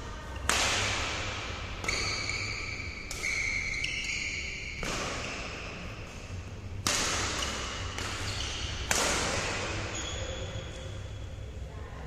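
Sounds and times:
racket hitting shuttlecock: 0.4s - 5.8s, 6.7s - 10.1s.

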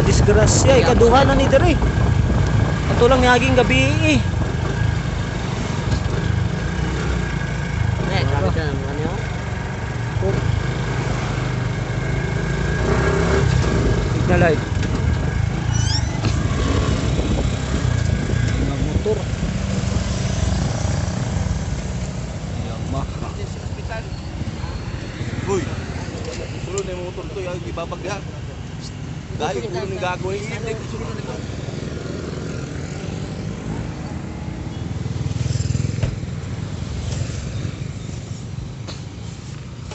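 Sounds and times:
vehicle engine rumbling: 0.0s - 39.9s.

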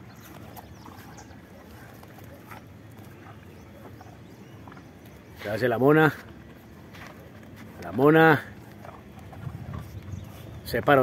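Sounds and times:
bull chewing: 0.0s - 11.0s.

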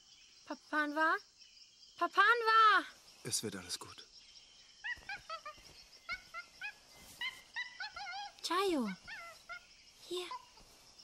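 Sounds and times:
monkey squeaky chirps: 4.8s - 9.6s.

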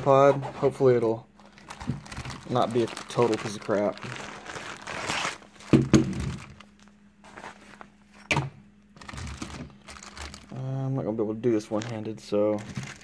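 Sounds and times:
plastic wrapping crinkling: 1.4s - 7.9s, 9.0s - 10.7s, 11.6s - 13.0s.

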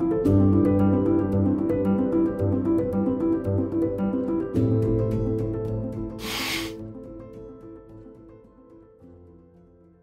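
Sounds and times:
background music: 0.0s - 10.0s
hissing slurp: 6.2s - 6.8s.

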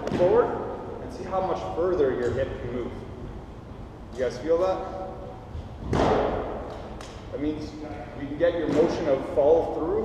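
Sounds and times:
thud echoing in a hall: 0.0s - 0.8s, 5.8s - 7.0s, 8.6s - 9.2s.

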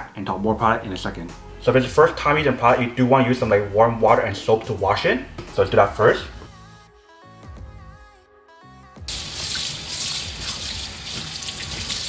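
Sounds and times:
soft background music: 0.0s - 12.0s
kitchen tap turned on: 9.1s - 12.0s
water running into a metal sink: 9.1s - 12.0s
water splashing over a pan lid: 9.1s - 12.0s.

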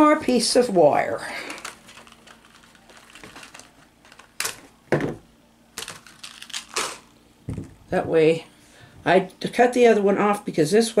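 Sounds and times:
plastic blister pack crinkling: 1.0s - 4.8s, 5.8s - 7.7s.

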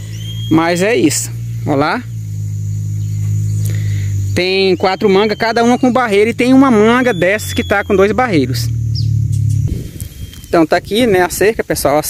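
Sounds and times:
low-pitched hum: 0.0s - 11.7s.

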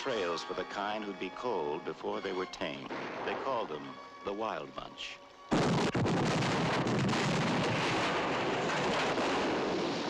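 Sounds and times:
explosion rumble and falling debris: 5.5s - 10.0s.

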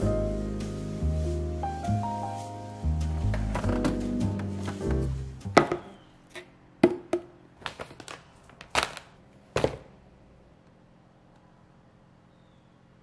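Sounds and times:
background music with bass line: 0.0s - 5.9s
plastic food tubs knocking: 3.3s - 6.0s
tub set down on wooden counter: 5.6s - 5.9s.

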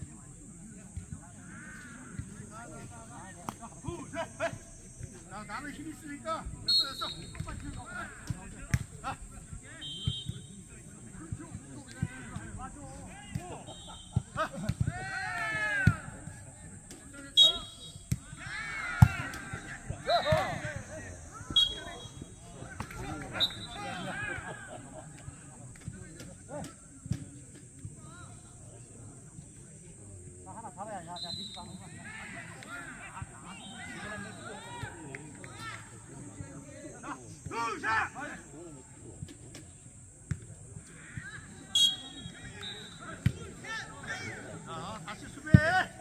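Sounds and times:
players and onlookers calling out: 0.5s - 46.0s.

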